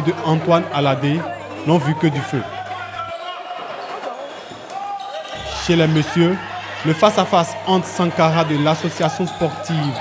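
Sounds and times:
players' voices echoing: 0:00.0 - 0:10.0.

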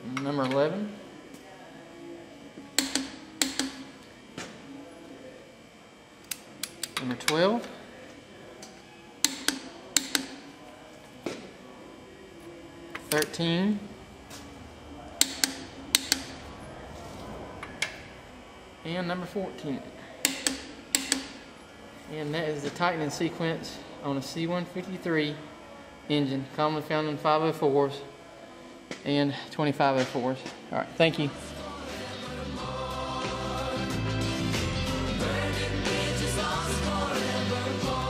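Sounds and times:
torque wrench clicks: 0:09.2 - 0:10.4, 0:20.2 - 0:21.4.

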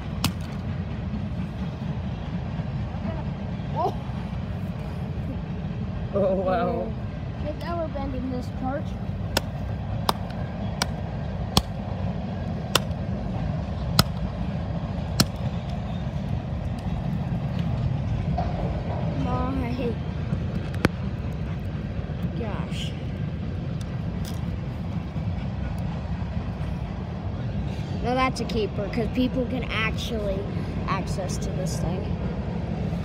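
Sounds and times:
steady low rumble: 0:00.0 - 0:33.0.

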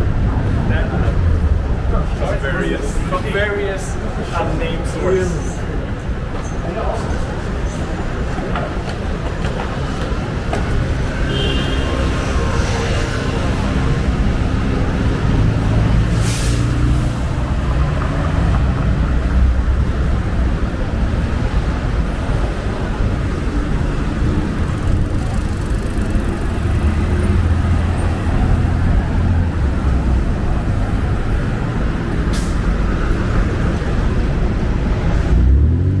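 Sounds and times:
city street traffic rumble: 0:00.0 - 0:36.0
brief sharp hisses: 0:16.1 - 0:16.8.

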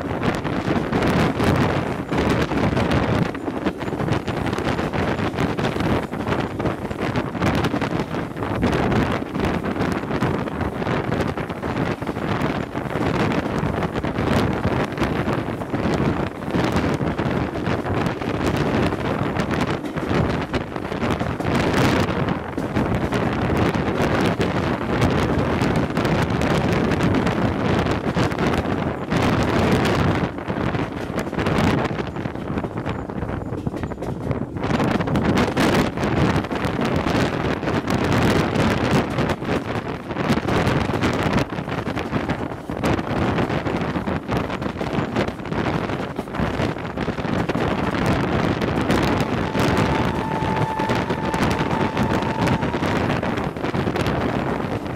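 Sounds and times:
train running on rails: 0:00.0 - 0:54.9
wind buffeting microphone: 0:00.0 - 0:54.9.

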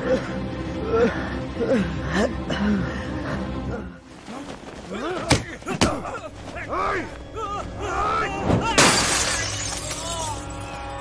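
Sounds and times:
background music: 0:00.0 - 0:11.0
loud shattering crash: 0:08.8 - 0:10.3.

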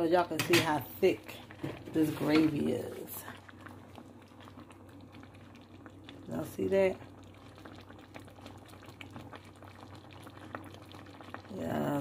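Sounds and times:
gravy bubbling in a pot: 0:00.0 - 0:12.0
low steady hum: 0:00.0 - 0:12.0.

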